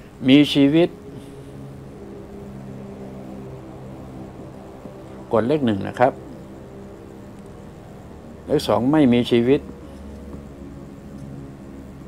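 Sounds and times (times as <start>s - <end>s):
low hum of held tones: 0.0s - 12.0s.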